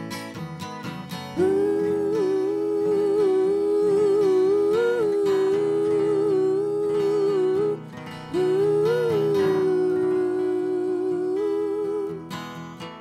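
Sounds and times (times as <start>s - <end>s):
strummed acoustic guitar: 0.0s - 13.0s
voices singing wordless harmony: 1.3s - 13.0s.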